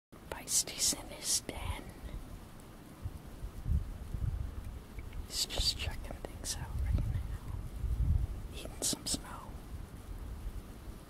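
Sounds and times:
wind buffeting microphone: 1.6s - 11.0s.

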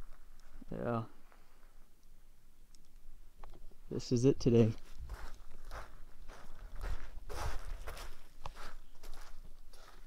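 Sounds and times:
footsteps on gravel: 4.7s - 10.0s.

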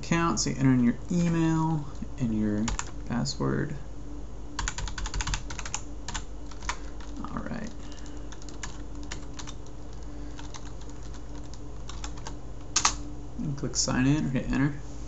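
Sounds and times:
steady low hum: 0.0s - 15.0s
keyboard typing: 2.5s - 3.0s, 4.6s - 13.0s.

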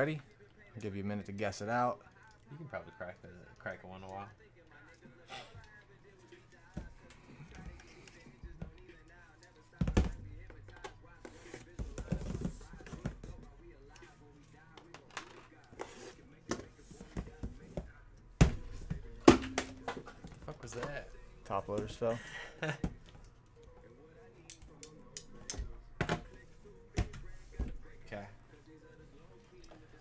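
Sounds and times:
faint background music: 0.0s - 30.0s.

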